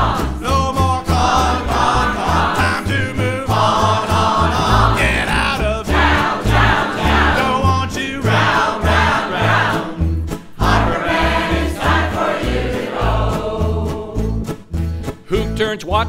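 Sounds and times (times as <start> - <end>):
choir singing: 0.0 - 14.5
strummed acoustic guitar: 0.0 - 16.0
upright bass playing: 0.0 - 16.0.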